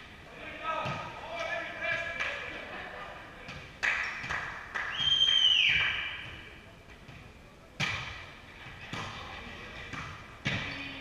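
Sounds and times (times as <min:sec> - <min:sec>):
volleyball being struck: 0:07.8 - 0:08.3.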